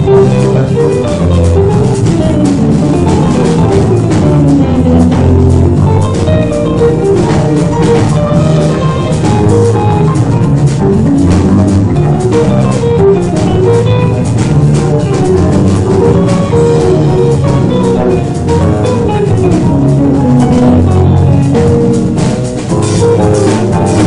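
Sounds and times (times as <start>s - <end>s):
drum kit: 0.0s - 24.0s
electric bass guitar: 0.0s - 24.0s
electric guitars: 0.0s - 24.0s
piano and keyboard: 0.0s - 24.0s.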